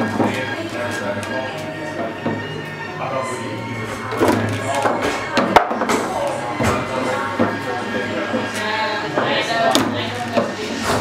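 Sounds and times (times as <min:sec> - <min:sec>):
background music: 0:00.0 - 0:11.0
foosball ball knocking: 0:04.1 - 0:07.6.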